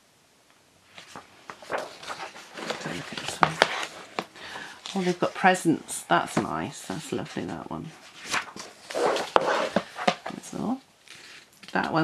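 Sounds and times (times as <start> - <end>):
paper pages rustling: 0.9 - 5.6, 6.3 - 12.0.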